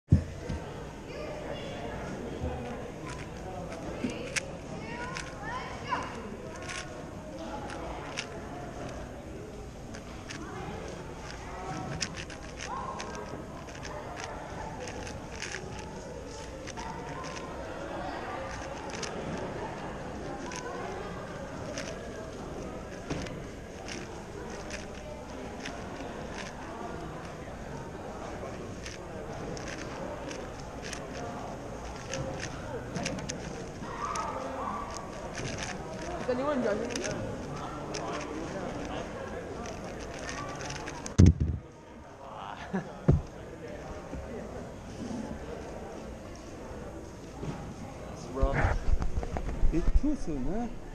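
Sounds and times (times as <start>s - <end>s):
murmur of voices: 0.1s - 50.9s
plastic puzzle cube clicking: 2.6s - 6.9s, 7.6s - 9.0s, 9.9s - 10.5s, 11.2s - 17.5s, 18.4s - 19.6s, 20.2s - 20.8s, 21.5s - 27.4s, 28.2s - 41.6s.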